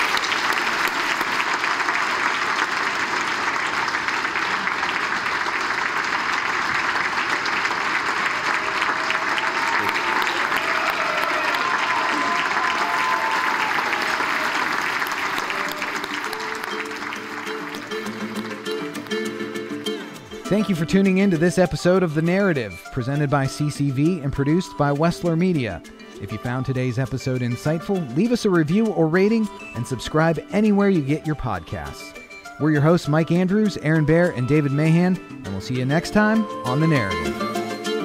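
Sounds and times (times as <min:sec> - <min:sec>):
audience applauding: 0:00.0 - 0:20.3
music: 0:00.1 - 0:38.0.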